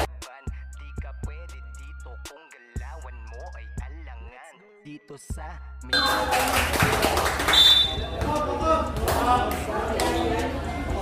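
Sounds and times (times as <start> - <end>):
spectators talking and calling out: 7.5 - 11.0.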